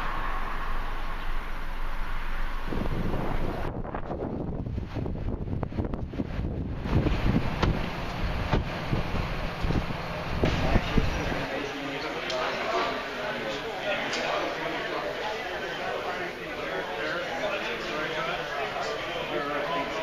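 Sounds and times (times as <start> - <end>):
road traffic rushing: 0.0 - 11.9
wind buffeting microphone: 2.5 - 11.4.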